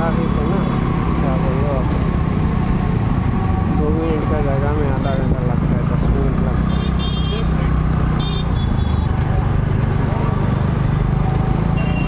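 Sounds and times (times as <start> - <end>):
street traffic noise: 0.0 - 12.0
voices in the street: 0.0 - 12.0.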